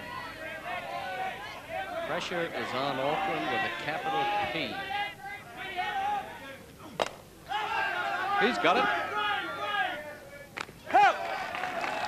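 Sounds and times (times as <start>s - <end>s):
commentary speech: 0.0s - 7.0s, 7.6s - 10.5s.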